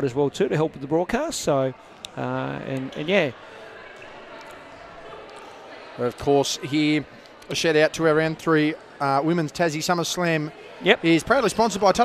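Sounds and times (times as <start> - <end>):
faint distant voices: 0.0 - 12.0
indoor hall background noise: 0.0 - 12.0.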